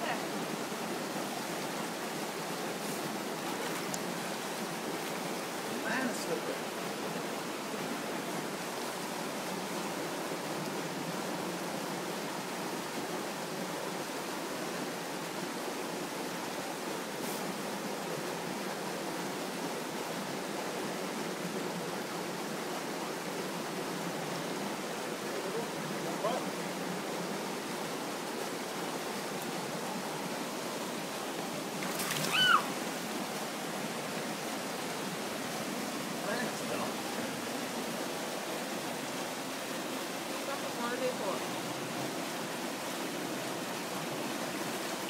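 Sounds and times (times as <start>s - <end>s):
stream running over rocks: 0.0s - 45.0s.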